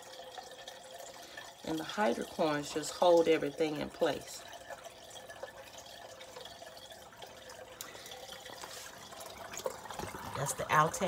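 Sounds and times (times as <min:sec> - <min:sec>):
water drips: 0:00.0 - 0:11.0
water trickling: 0:00.0 - 0:11.0.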